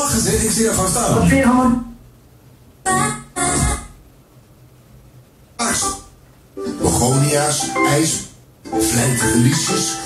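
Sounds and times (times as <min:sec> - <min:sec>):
organ-like keyboard music on radio: 0:05.6 - 0:10.0.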